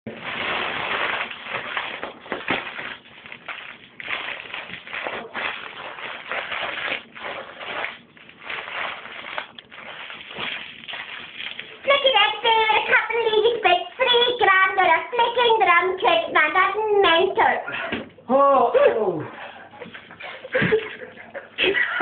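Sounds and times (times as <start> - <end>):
foil crinkling: 0.1 - 14.4.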